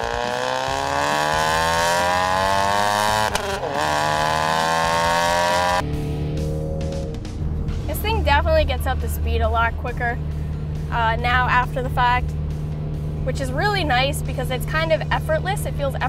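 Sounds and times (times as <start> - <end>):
car engine accelerating hard: 0.0 - 16.0.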